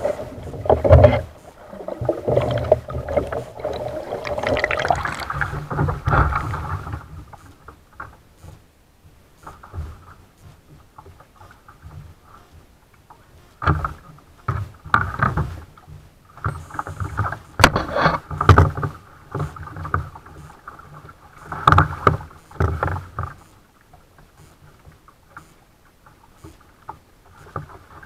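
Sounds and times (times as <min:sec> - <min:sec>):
paddle strokes splashing: 0:00.0 - 0:08.6, 0:09.3 - 0:28.0
paddle knocking against hull: 0:00.5 - 0:07.4, 0:13.6 - 0:23.4.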